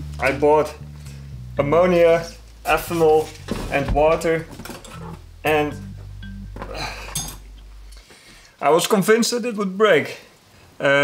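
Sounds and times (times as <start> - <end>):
background music with low bass: 0.0 - 8.5.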